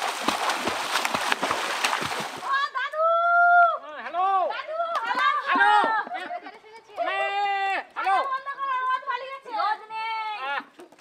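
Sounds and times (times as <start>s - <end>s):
swimmer splashing in water: 0.0s - 2.5s.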